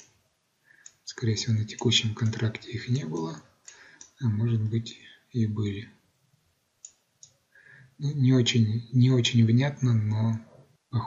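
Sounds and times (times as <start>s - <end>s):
computer mouse clicks: 1.7s - 4.2s, 6.8s - 7.4s.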